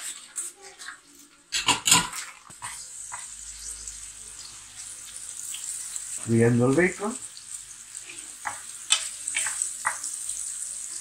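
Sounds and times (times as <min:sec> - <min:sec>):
bacon sizzling in a frying pan: 0:00.0 - 0:11.0.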